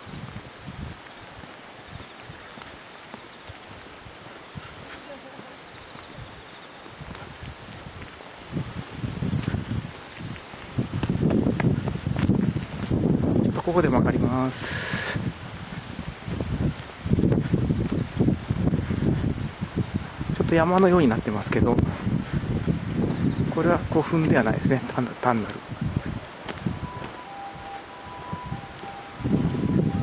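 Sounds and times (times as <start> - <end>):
footsteps on asphalt: 0.0 - 30.0
wind and rustling leaves: 0.0 - 30.0.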